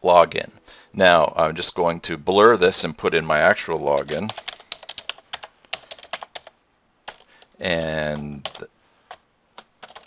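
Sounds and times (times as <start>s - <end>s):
computer keyboard typing: 4.0s - 10.0s.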